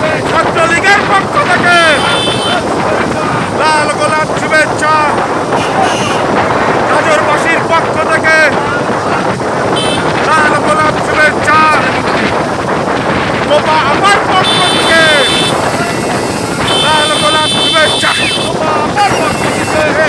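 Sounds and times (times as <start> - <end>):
men shouting: 0.0 - 6.3, 13.5 - 20.0
motorcycle engines: 0.0 - 20.0
wind on microphone: 0.0 - 20.0.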